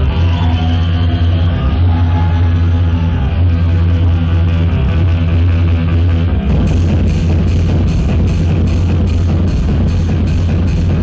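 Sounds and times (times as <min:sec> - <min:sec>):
loud dance music with heavy bass: 0:00.0 - 0:11.0.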